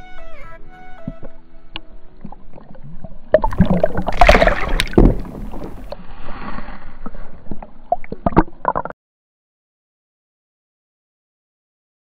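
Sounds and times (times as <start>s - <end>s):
water sloshing underwater: 1.0s - 9.0s.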